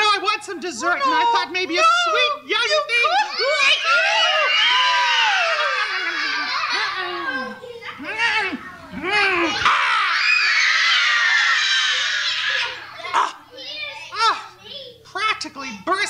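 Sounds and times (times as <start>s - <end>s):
children shouting and squealing: 0.9s - 15.0s
child calling out: 12.5s - 14.6s.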